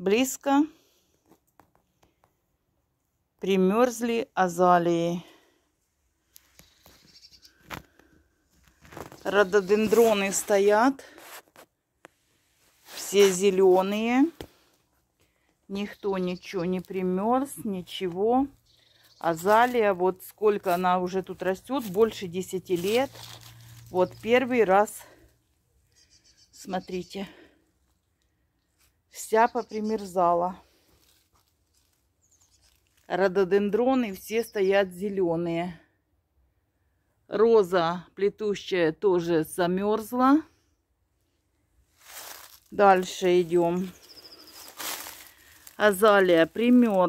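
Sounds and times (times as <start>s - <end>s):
faint rustles: 6.2s - 15.7s, 20.6s - 25.6s, 30.6s - 33.1s, 41.9s - 47.0s
brief crackle: 6.3s - 9.3s.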